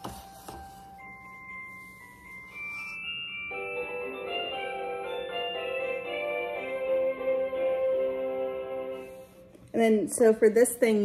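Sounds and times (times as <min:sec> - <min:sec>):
bell-like tune: 0:00.2 - 0:09.1
held chime notes: 0:00.2 - 0:09.4.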